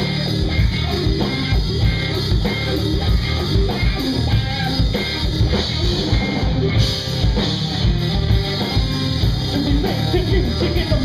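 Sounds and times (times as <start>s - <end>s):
drum kit: 0.0s - 11.0s
electric bass: 0.0s - 11.0s
electric guitar: 0.0s - 11.0s.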